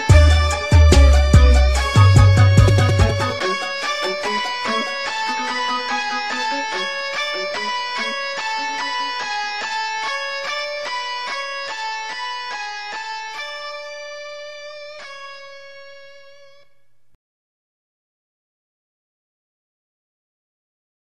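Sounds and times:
clean electric guitar picking: 0.0 - 16.8.

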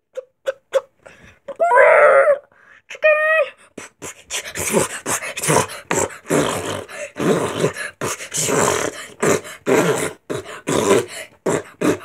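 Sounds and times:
boy beatboxing: 3.7 - 12.0.

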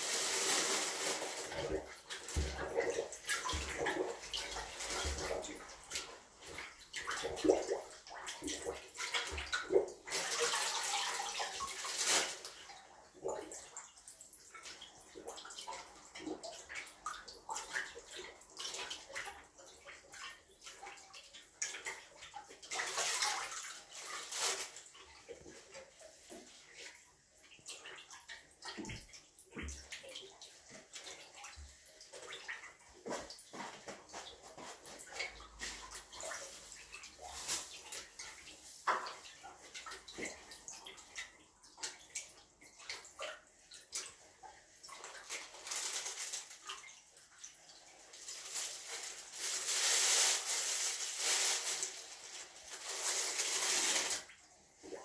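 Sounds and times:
water splashing in toilet bowl: 0.0 - 55.0.

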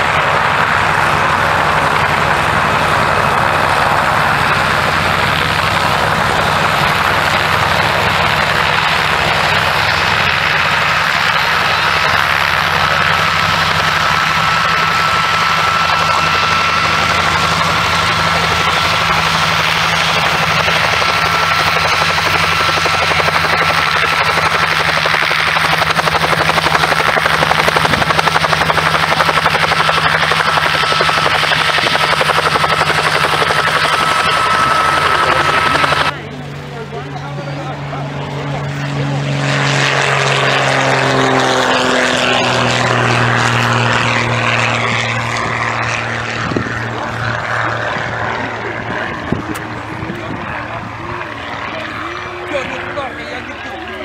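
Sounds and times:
propeller aircraft engine running: 0.0 - 54.0.

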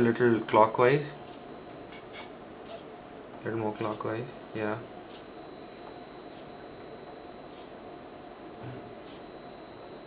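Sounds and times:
high-pitched servo chirps: 1.2 - 1.6, 2.6 - 2.9, 3.8 - 4.1, 5.0 - 6.6, 7.4 - 7.8, 9.0 - 9.5
servo motor whine: 1.2 - 2.9, 5.0 - 7.8, 8.6 - 10.0.

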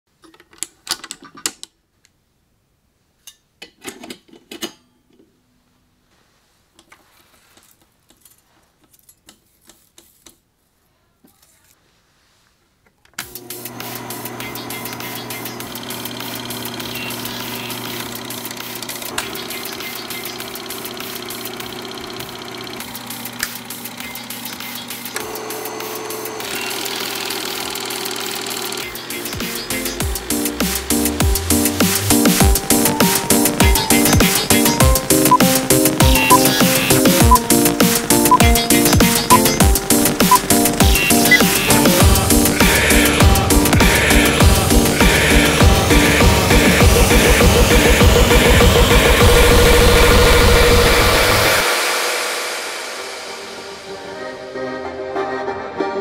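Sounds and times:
film projector mechanical clatter: 13.2 - 29.6
projector motor hum: 13.2 - 53.9.

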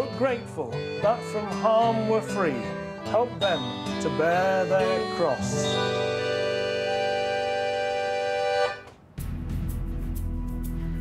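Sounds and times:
accordion and guitar chord: 0.0 - 9.0.

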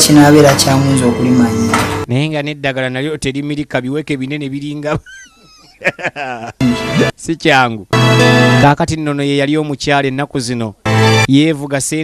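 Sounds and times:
speech: 0.0 - 5.0, 6.6 - 7.9, 8.6 - 12.0.

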